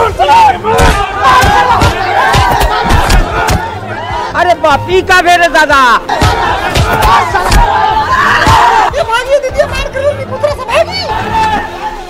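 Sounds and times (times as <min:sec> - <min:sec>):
crowd shouting and yelling: 0:00.0 - 0:09.5, 0:10.6 - 0:12.0
dull thumps: 0:00.8 - 0:03.7, 0:06.1 - 0:07.8.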